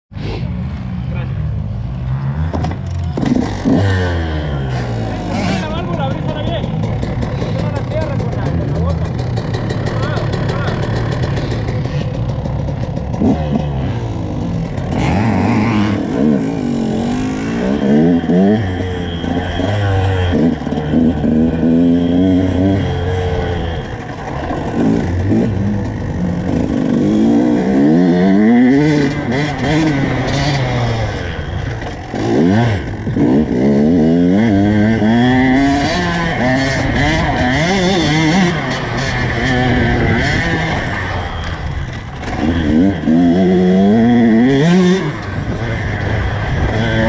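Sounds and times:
dirt bike engine revving: 0.2s - 47.0s.

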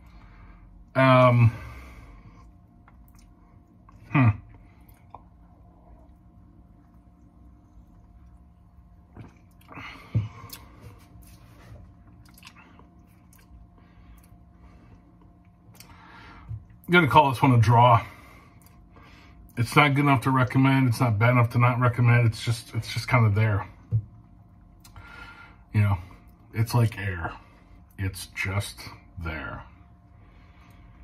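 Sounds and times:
low room hum: 0.0s - 31.0s
lip smacks and tongue clicks: 2.8s - 4.0s, 4.8s - 5.4s, 12.0s - 13.6s
man humming hmm: 3.9s - 4.6s.

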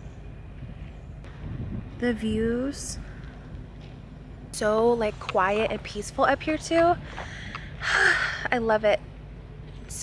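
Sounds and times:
wind buffeting microphone: 0.0s - 7.9s.

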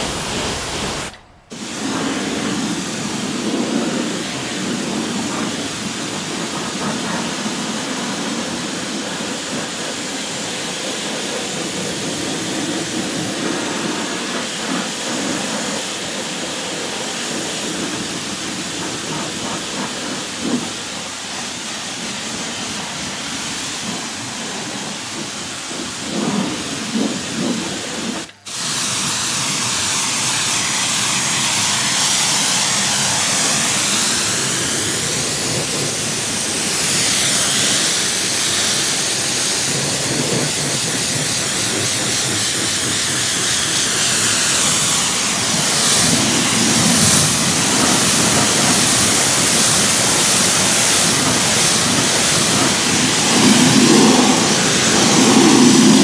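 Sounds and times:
pressure washer jet hissing: 0.0s - 56.0s.

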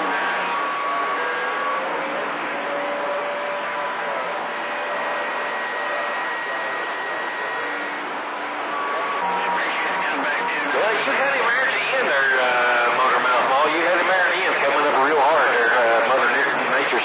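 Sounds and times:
radio static hiss: 2.9s - 17.0s.

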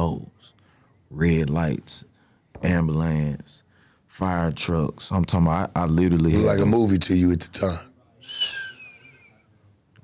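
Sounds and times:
short breathy whistle: 8.2s - 9.5s.

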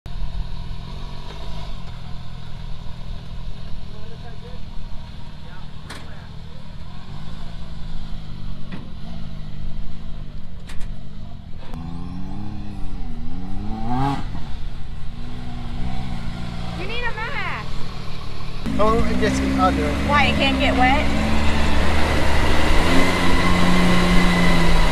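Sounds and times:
engine idling and revving: 0.1s - 24.9s
voices: 16.7s - 21.1s.

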